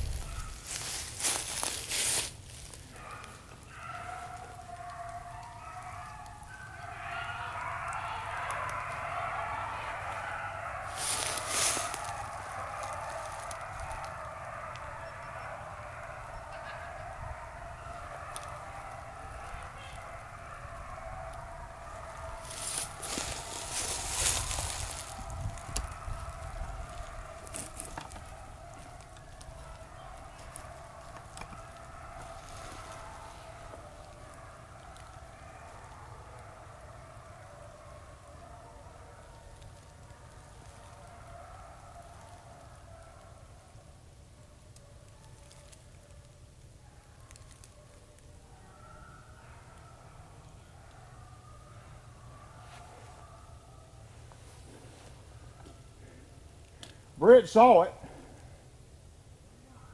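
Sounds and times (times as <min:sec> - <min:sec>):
beagles baying: 0:00.0 - 0:59.9
rustling close to microphone: 0:10.9 - 0:14.0, 0:22.4 - 0:33.8.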